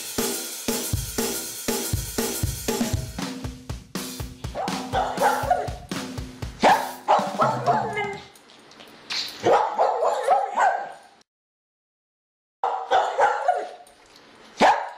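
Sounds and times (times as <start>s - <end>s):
drum-kit music: 0.0s - 8.2s
dog barking: 4.5s - 5.9s, 6.6s - 8.3s, 9.4s - 11.2s, 12.6s - 13.8s, 14.6s - 14.9s.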